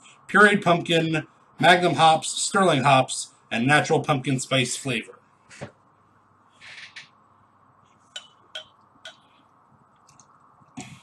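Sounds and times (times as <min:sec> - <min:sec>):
glass bottle clinks: 0:08.2 - 0:09.2.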